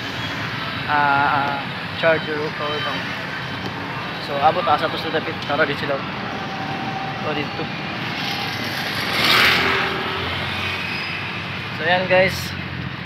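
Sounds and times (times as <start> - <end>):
traffic rumble: 0.0 - 13.0
vehicle passing: 4.4 - 12.9.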